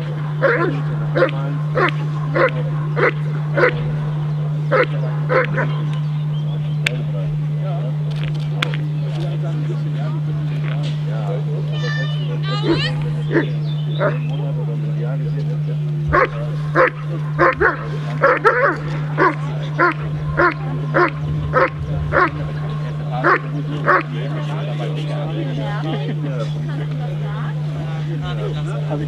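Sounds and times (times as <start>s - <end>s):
steady low hum: 0.0s - 29.0s.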